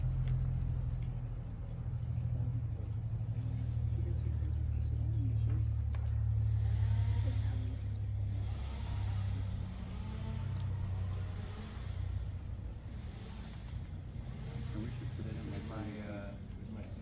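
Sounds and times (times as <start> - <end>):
faint voices murmuring: 0.0 - 17.0
steady low hum: 0.0 - 17.0.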